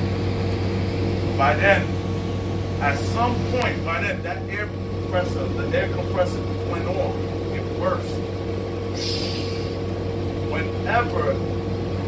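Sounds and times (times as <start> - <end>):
bus engine idling: 0.0 - 12.0
air hiss: 8.9 - 9.8.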